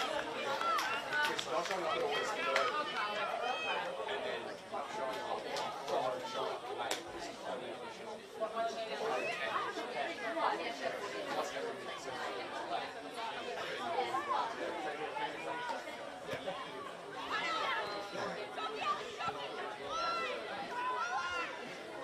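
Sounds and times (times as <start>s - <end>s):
voices calling out and chattering: 0.0s - 22.0s.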